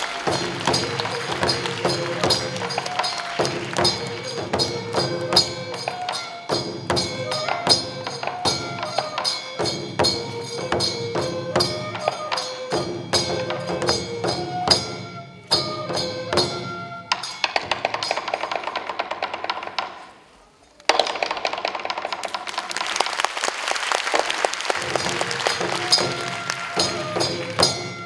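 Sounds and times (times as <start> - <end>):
folk dance percussion with ringing tones: 0.0 - 23.2, 24.0 - 28.0.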